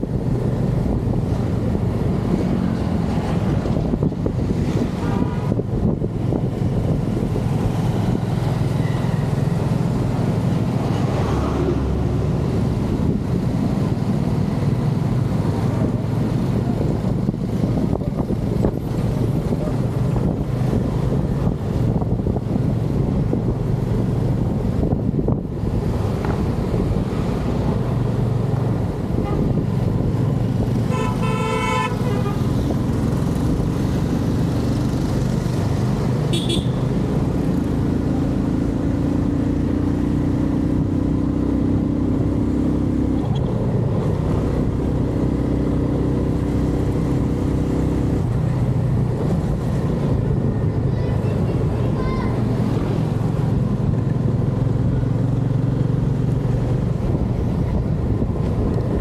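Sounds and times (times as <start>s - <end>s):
road and wind noise: 0.0s - 59.0s
vehicle horn beeping: 30.9s - 32.5s, 36.3s - 36.8s.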